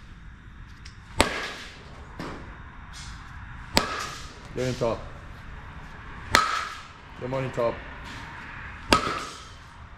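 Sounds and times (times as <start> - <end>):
bat striking softball: 1.1 - 3.1, 3.7 - 4.7, 6.2 - 7.0, 8.8 - 9.7.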